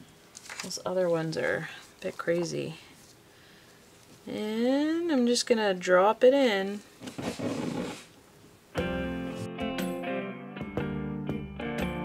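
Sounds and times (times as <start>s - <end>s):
paper rustling: 0.3s - 1.2s
guitar music: 8.8s - 12.0s.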